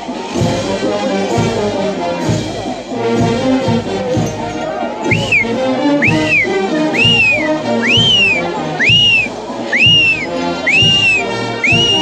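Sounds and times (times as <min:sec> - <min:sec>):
brass band with drum beat: 0:00.0 - 0:12.0
high whistle call: 0:05.1 - 0:12.0.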